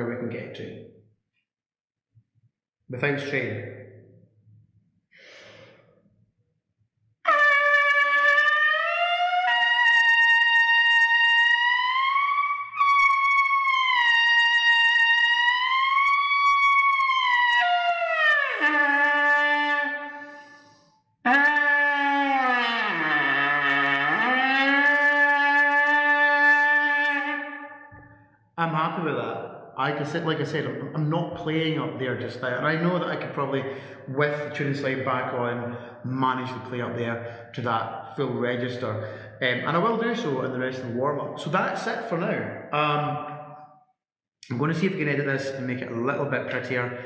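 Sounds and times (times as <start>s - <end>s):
trumpet leadpipe buzz tones: 7.3s - 28.2s.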